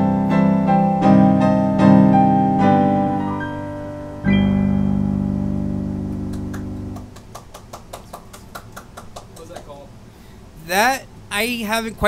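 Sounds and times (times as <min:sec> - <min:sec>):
piano chord ringing: 0:00.0 - 0:07.1.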